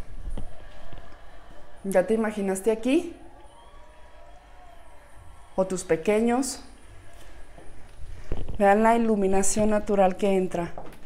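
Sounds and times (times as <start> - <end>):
faint hum: 0.0 - 9.4
woman speaking: 1.8 - 3.2, 5.6 - 6.8, 8.6 - 10.8.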